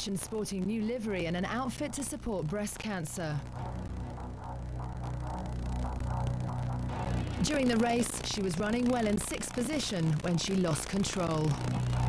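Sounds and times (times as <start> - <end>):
low bass tone: 3.4 - 9.1, 11.5 - 12.0.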